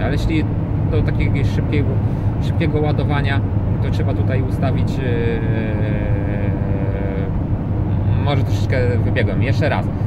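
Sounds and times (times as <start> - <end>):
vehicle cabin rumble: 0.0 - 10.0.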